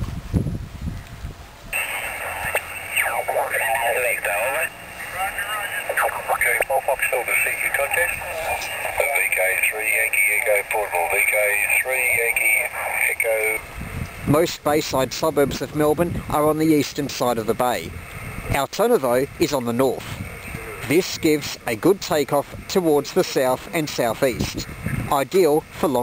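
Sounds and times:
wind rumbling on microphone: 0:00.0 - 0:26.0
radio voices through small speaker: 0:01.8 - 0:13.6, 0:14.2 - 0:26.0.

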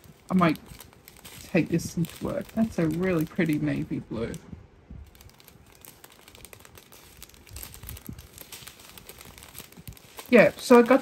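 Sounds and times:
plastic packets crinkling: 0:00.0 - 0:11.0.

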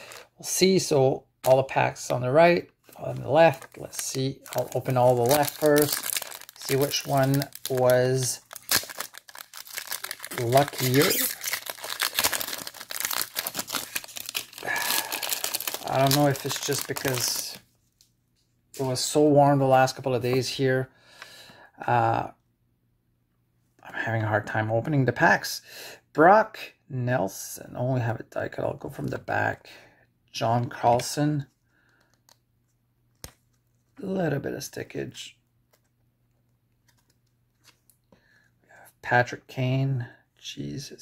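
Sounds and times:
foil wrapper crinkling: 0:03.0 - 0:17.6.

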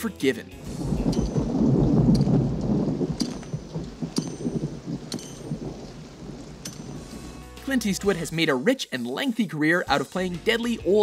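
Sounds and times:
rolling thunder: 0:00.6 - 0:08.3
steady rain: 0:00.6 - 0:08.4
sharp ticks: 0:03.2 - 0:07.0.

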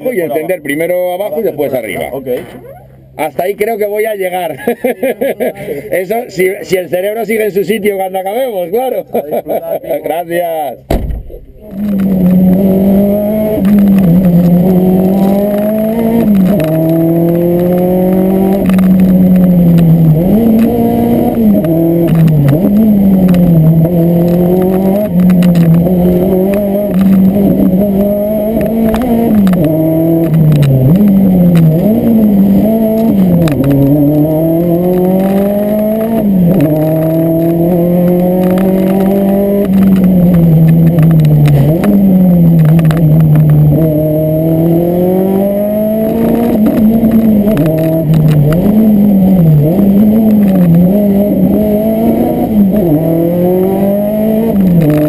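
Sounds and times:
rally car engine revving: 0:09.3 - 0:55.0
sharp clicks and rattles: 0:13.4 - 0:43.9, 0:45.9 - 0:53.8, 0:54.4 - 0:55.0.

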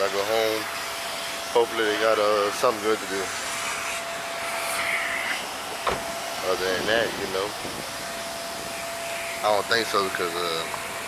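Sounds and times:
car wash vacuum machinery whirring: 0:00.0 - 0:11.0
single knock: 0:05.8 - 0:06.1.

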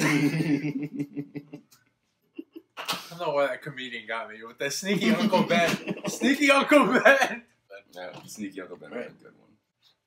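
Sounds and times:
men laughing: 0:00.0 - 0:01.7, 0:04.9 - 0:07.4.

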